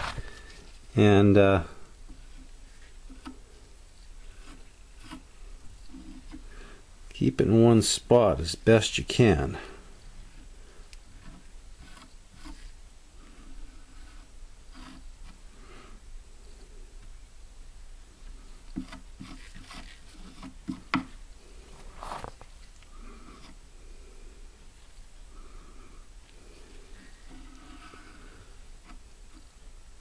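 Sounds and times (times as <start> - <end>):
hand tools scraping: 4.2 - 6.7, 18.7 - 21.1, 26.4 - 29.5.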